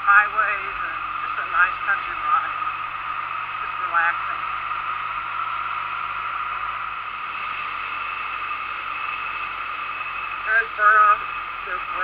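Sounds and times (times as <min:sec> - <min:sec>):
low motorcycle engine hum: 0:00.0 - 0:12.0.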